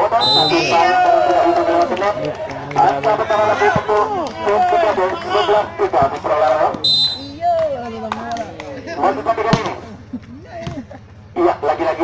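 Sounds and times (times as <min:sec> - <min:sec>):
voices shouting and calling: 0:00.0 - 0:12.0.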